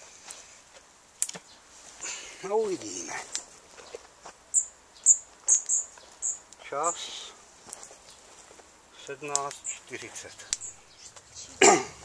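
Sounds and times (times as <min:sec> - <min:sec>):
bird chirping: 0:01.2 - 0:12.0
sharp clicks: 0:10.5 - 0:10.7.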